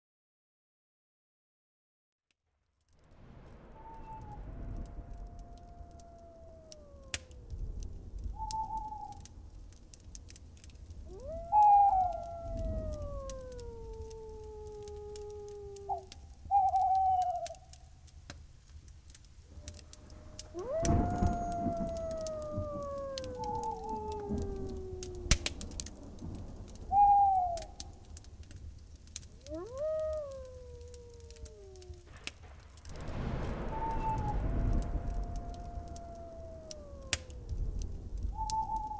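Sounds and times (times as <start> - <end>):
low rumble: 3.2 - 16.5, 30.4 - 38.9
wolves howling: 3.8 - 9.3, 10.6 - 17.8, 19.5 - 38.9
scattered clicks: 19.2 - 26.8.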